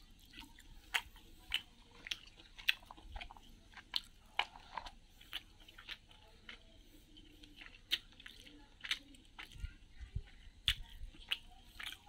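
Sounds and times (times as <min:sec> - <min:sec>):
man chewing with mouth smacks: 0:00.0 - 0:12.0.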